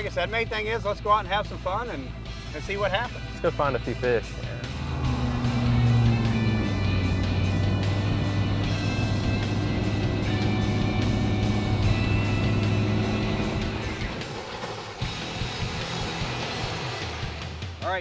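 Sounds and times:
background music: 0:00.0 - 0:18.0
outboard motor running: 0:04.4 - 0:17.4.

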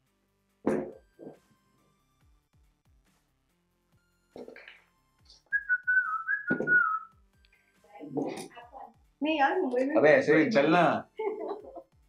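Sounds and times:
faint background music with soft beat: 0:00.0 - 0:12.0
whistled tone: 0:05.5 - 0:07.2
short thud: 0:06.4 - 0:07.0.

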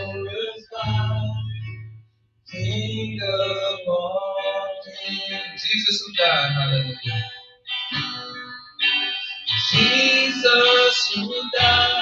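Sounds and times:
person singing worship song: 0:00.0 - 0:01.6, 0:09.1 - 0:12.0
electric guitar: 0:00.0 - 0:12.0.

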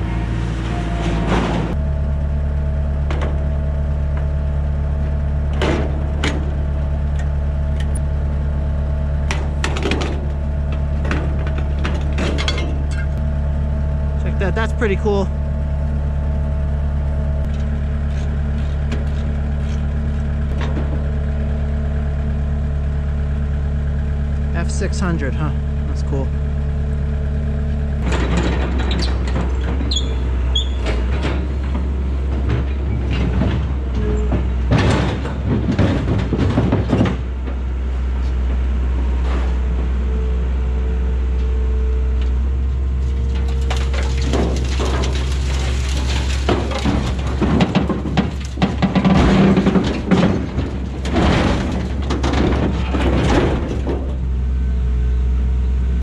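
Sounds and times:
steel clanking and scraping: 0:00.0 - 0:01.8, 0:09.2 - 0:13.2, 0:17.4 - 0:21.3, 0:28.0 - 0:37.6, 0:42.9 - 0:54.3
excavator engine running: 0:00.0 - 0:56.0.

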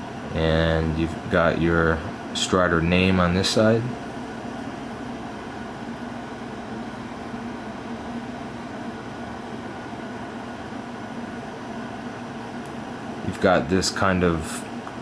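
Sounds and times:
room hum and hiss: 0:00.0 - 0:15.0.

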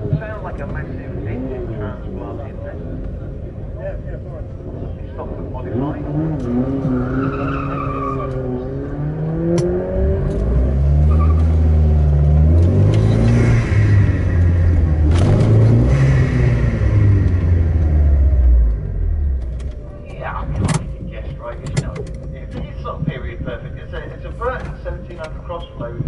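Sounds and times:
car engine revving and accelerating: 0:05.3 - 0:19.8.

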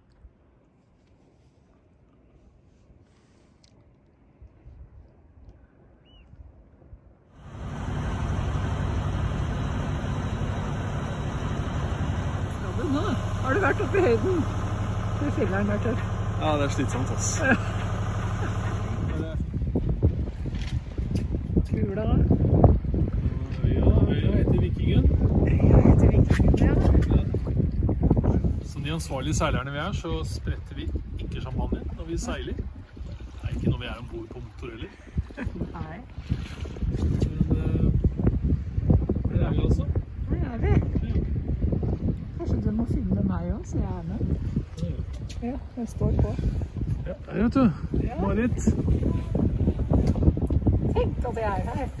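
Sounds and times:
wind on microphone: 0:04.4 - 0:52.0
boat engine droning: 0:07.4 - 0:19.9, 0:48.2 - 0:52.0.

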